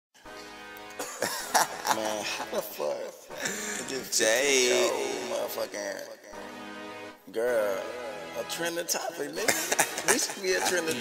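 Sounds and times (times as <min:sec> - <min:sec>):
held musical tone: 0:00.3 - 0:11.0
man coughing: 0:00.9 - 0:02.6
man's voice: 0:01.0 - 0:11.0.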